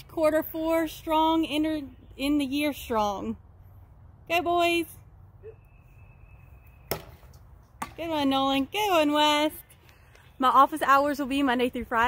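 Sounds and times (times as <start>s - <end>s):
plastic bat striking ball: 6.9s - 8.0s.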